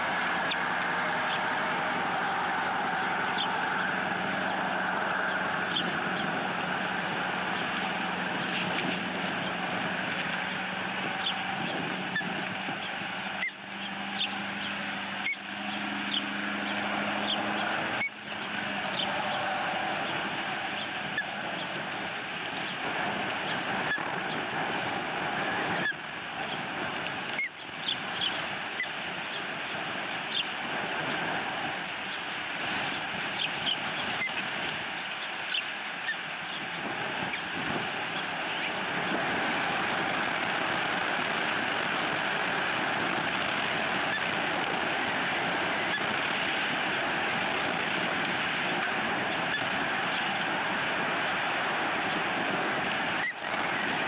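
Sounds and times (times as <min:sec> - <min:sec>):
low engine-like hum: 0:00.0 - 0:54.0
steady hiss: 0:00.0 - 0:54.0.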